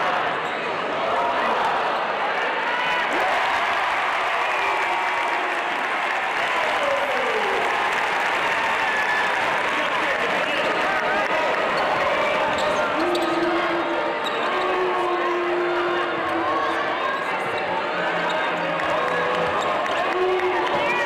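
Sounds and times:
crowd voices din: 0.0 - 21.0.

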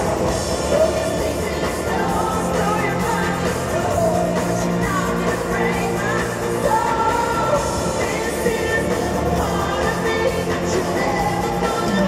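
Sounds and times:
loud amplified live pop music: 0.0 - 12.0.

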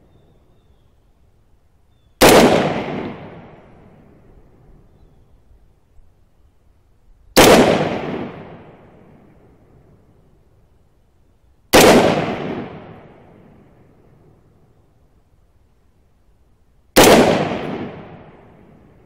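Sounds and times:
rifle shots with echo: 2.2 - 4.2, 7.4 - 9.3, 11.7 - 13.6, 17.0 - 19.0.

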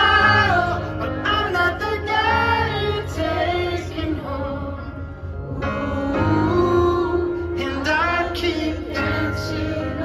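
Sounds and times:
live concert music: 0.0 - 10.0.

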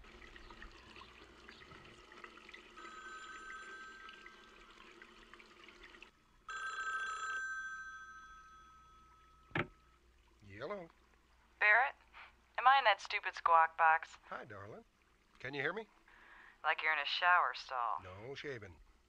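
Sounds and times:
two-tone telephone ring: 2.8 - 4.9, 6.5 - 9.7
tap running: 9.5 - 9.8.

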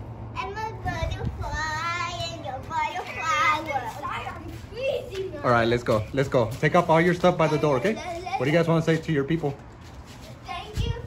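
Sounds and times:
child singing: 0.4 - 5.4.

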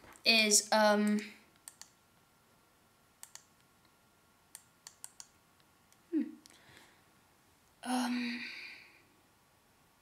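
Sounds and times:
computer mouse clicks: 1.0 - 2.0, 3.2 - 3.7, 4.5 - 6.6.

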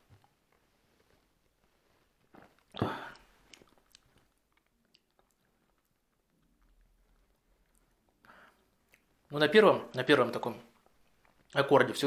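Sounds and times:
lip smacking: 2.6 - 9.2
man exhaling: 2.8 - 3.3.

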